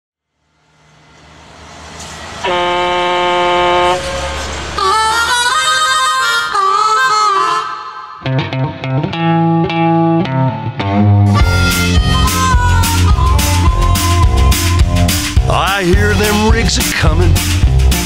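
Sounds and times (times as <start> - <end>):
low rumble: 0.3 - 6.6
horn-like chord: 0.7 - 7.4, 11.3 - 17.3
blues harmonica wailing: 2.4 - 17.9.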